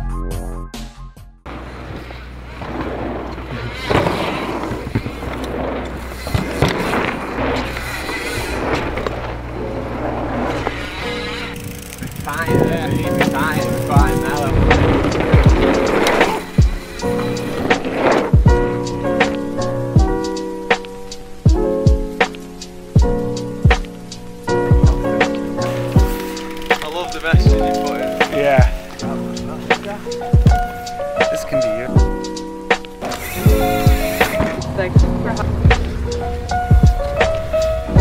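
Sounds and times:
music: 0:00.0 - 0:03.2, 0:03.9 - 0:38.0
bike tyres whooshing over dirt: 0:01.5 - 0:38.0.

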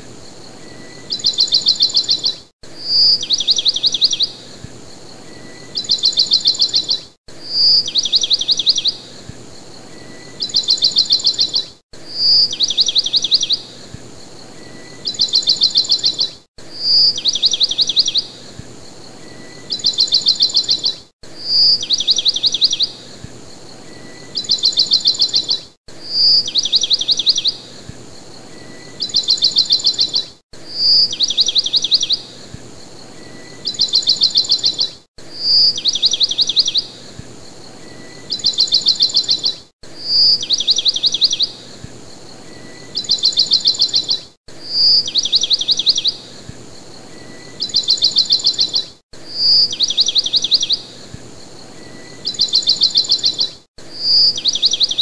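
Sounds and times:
faint steady hiss: 0:00.0 - 0:54.6
bird song with high trills: 0:00.0 - 0:55.0.

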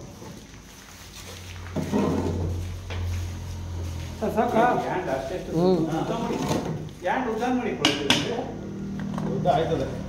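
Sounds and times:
person talking: 0:04.2 - 0:06.4.

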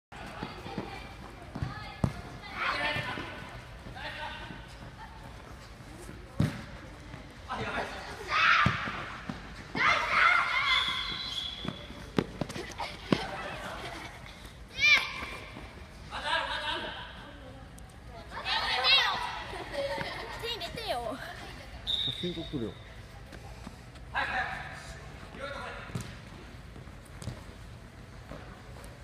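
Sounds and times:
ball kicked on artificial turf: 0:25.9 - 0:26.4.

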